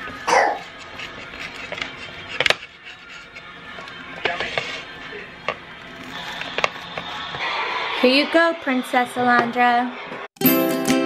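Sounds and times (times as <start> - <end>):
soft background music: 0.0 - 6.8.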